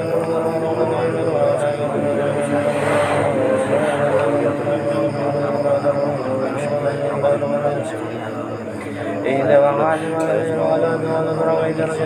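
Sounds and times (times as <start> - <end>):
men chanting in unison: 0.0 - 12.0.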